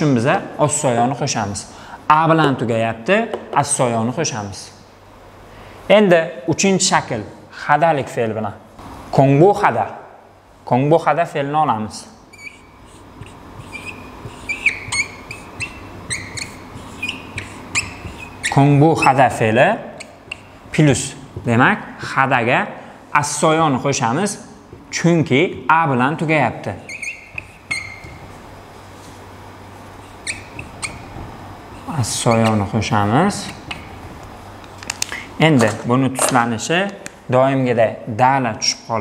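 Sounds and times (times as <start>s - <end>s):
marker squeaking on whiteboard: 12.2s - 20.8s, 26.6s - 28.5s, 29.7s - 34.2s.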